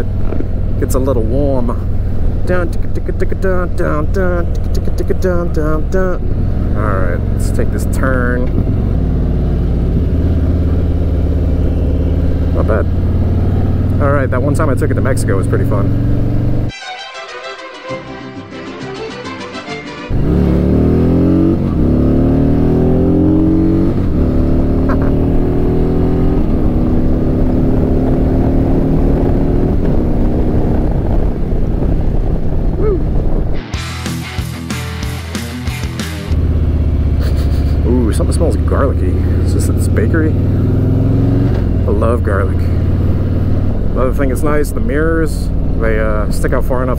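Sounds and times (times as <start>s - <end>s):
motorcycle engine accelerating: 0.0s - 16.7s, 20.1s - 46.9s
rapid engine fluttering: 0.0s - 16.7s, 36.2s - 46.9s.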